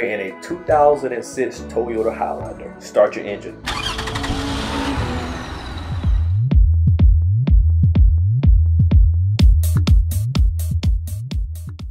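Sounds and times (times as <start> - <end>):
car engine running: 3.7 - 6.4
electronic music with kick drum: 5.8 - 11.9.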